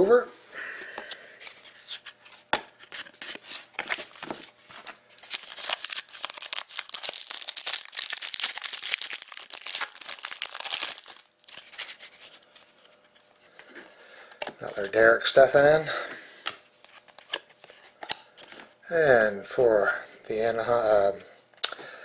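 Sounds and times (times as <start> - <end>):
foil wrapper tearing and crinkling: 5.2 - 12.3.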